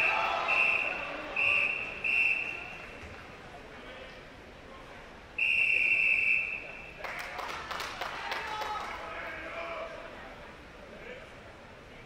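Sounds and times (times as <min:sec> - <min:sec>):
whistle long blast: 0:00.0 - 0:02.7, 0:05.4 - 0:06.9
voices: 0:00.0 - 0:12.0
people clapping: 0:01.7 - 0:03.4, 0:07.0 - 0:09.5.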